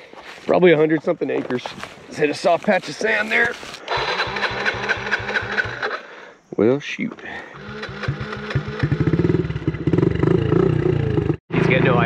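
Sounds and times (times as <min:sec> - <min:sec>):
dirt bike engine chugging: 0:03.9 - 0:06.1, 0:07.4 - 0:12.0.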